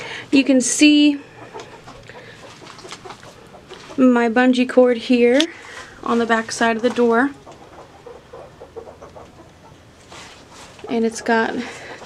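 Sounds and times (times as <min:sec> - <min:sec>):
chickens clucking quietly: 0:00.8 - 0:04.4, 0:05.3 - 0:12.0.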